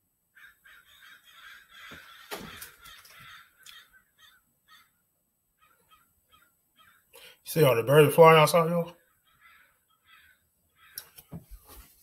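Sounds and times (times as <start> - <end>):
crows cawing: 0.3 - 5.0, 5.6 - 7.4, 8.9 - 11.3.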